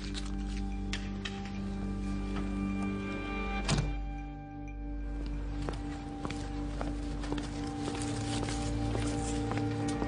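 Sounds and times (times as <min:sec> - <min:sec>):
background music of sustained tones: 0:00.0 - 0:10.0.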